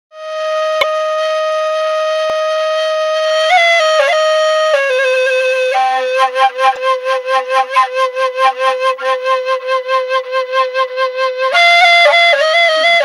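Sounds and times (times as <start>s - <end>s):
flute-like wind instrument: 0.1s - 13.0s.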